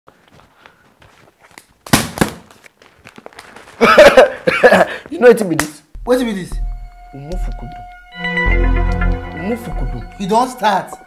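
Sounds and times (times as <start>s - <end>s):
plastic bottle being shaken: 2.5s - 3.8s.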